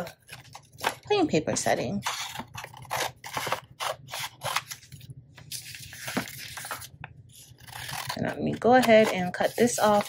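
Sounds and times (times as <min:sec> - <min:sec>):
scissors cutting paper: 0:00.0 - 0:10.0.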